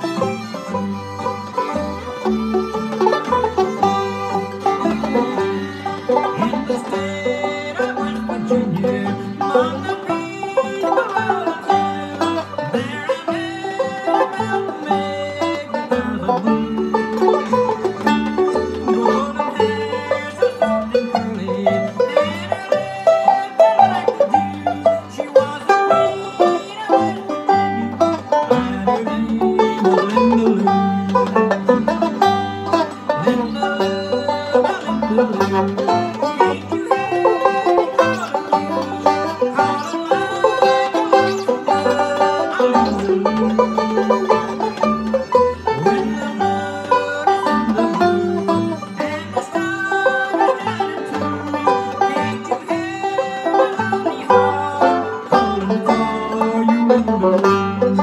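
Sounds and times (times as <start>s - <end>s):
banjo picking bluegrass licks: 0.0s - 58.0s
bass line: 0.0s - 58.0s
bluegrass backing track: 0.0s - 58.0s.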